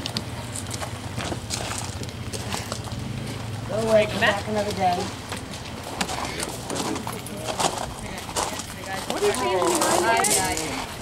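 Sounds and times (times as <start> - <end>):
footsteps on gravel: 0.3 - 11.0.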